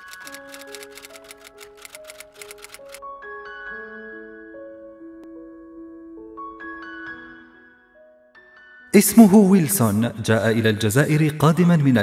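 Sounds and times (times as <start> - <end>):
typewriter key clicks: 0.0 - 3.0
soft music with held notes: 0.0 - 12.0.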